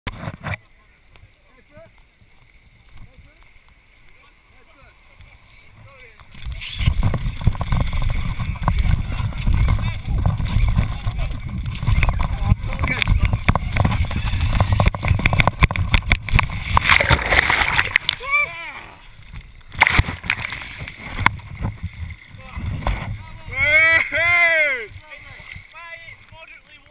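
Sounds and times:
water rushing on slide: 5.1 - 26.9
wind buffeting microphone: 6.3 - 18.2, 19.2 - 25.7
plunge into pool: 15.4 - 18.9, 19.7 - 21.4
short crackles: 19.0 - 23.4.

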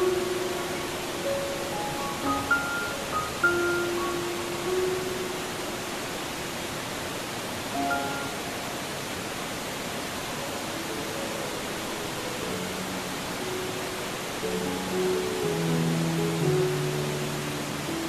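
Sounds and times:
soft background music: 0.0 - 6.6, 7.7 - 18.0
steady rushing hiss: 0.0 - 18.0.

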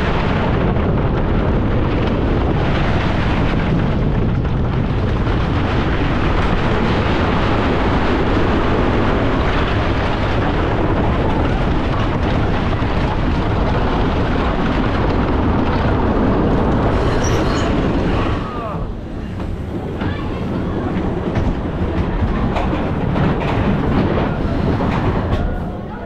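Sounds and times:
coaster train clacks: 0.0 - 26.0
roller coaster rumbling on wooden track: 0.0 - 26.0
brake squeal: 17.0 - 17.8.

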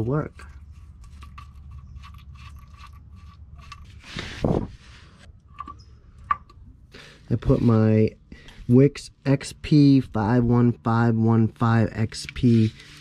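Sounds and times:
metal scrape: 7.3 - 7.9.

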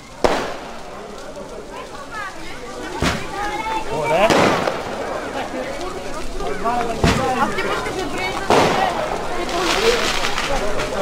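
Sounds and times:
firecracker bang: 0.0 - 1.0, 2.9 - 3.5, 4.2 - 5.5, 6.9 - 7.6, 8.3 - 11.0
people talking: 0.0 - 11.0.

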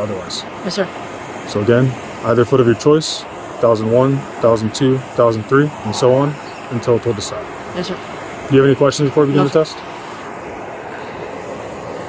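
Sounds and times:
idling vehicles and street traffic: 0.0 - 12.0.

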